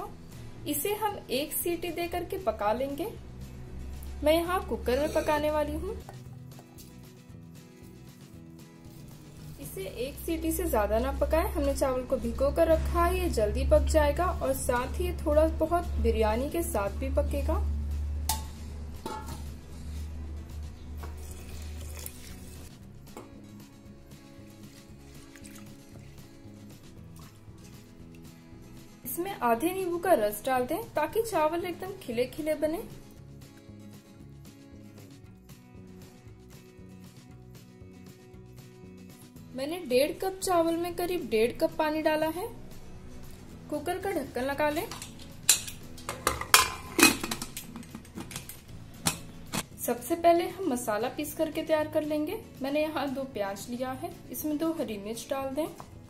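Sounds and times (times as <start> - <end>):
soft background music: 0.0 - 56.0
metal lid clanking: 18.3 - 19.5, 44.9 - 48.4
rice sloshing in water: 24.6 - 25.9.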